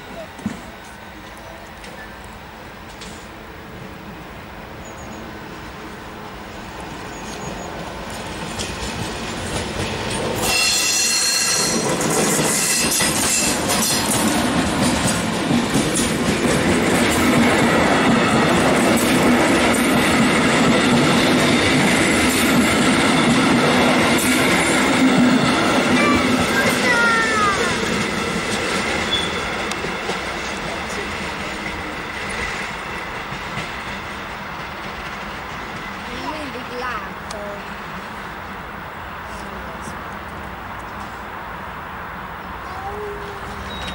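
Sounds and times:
electric locomotive rumble: 0.0 - 43.9
wheels running on rail: 0.0 - 43.9
wheel squeal: 10.4 - 14.0, 29.0 - 29.6, 43.6 - 43.9.

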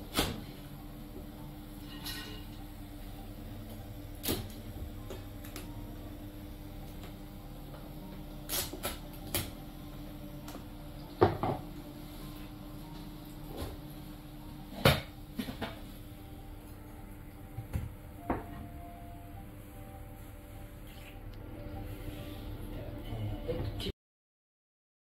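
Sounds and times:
faint steady hum: 0.0 - 23.9
dishes and utensils clicking: 1.8 - 2.6.

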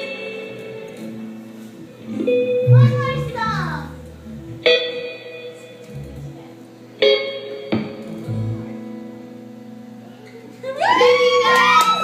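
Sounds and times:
guitar chords ringing: 0.0 - 10.6.

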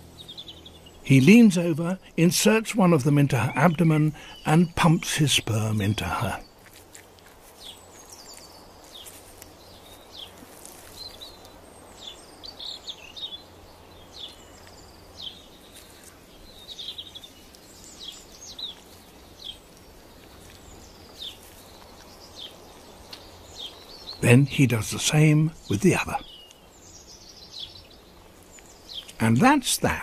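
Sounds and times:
low steady background hiss: 0.0 - 30.0
small birds chirping: 0.0 - 30.0.

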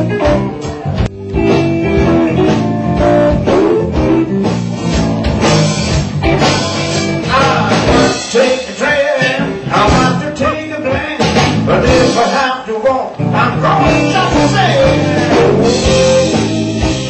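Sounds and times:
drum kit beat: 0.0 - 12.5, 13.3 - 17.0
bass guitar: 0.0 - 17.0
electric guitar: 0.0 - 17.0.

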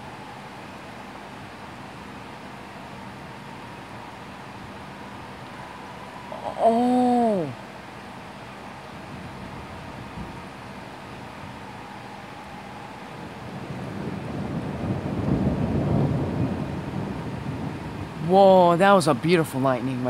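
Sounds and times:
heavy rain hiss: 0.0 - 20.0
rolling thunder: 13.1 - 18.3.

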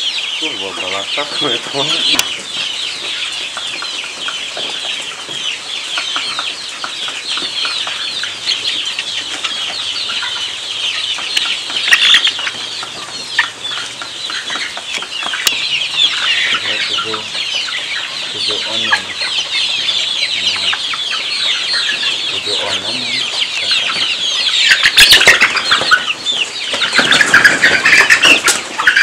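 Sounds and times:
chickens clucking: 0.0 - 29.0
chicks peeping: 0.0 - 29.0.

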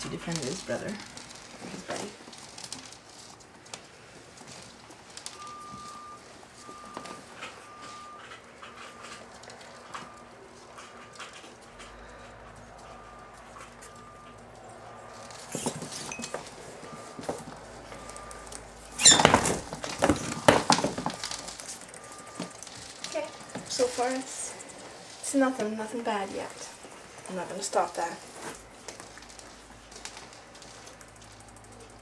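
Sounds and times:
rats scrabbling on wooden floor: 0.0 - 32.0
rats scuffling: 0.0 - 32.0.

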